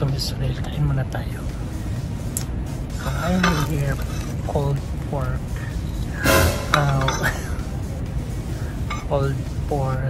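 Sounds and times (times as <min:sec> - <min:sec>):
background music: 0:01.2 - 0:10.0
plate clinking on table: 0:06.3 - 0:07.4.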